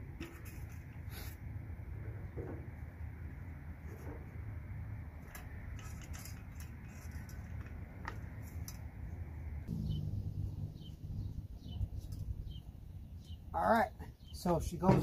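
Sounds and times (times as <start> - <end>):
light clicks and scrapes: 0.2 - 1.4, 5.2 - 8.9
low hum: 9.2 - 13.6
small birds chirping: 9.7 - 14.9.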